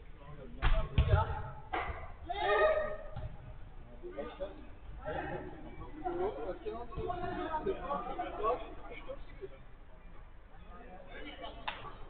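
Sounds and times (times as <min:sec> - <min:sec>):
football being kicked: 0:00.6 - 0:01.4.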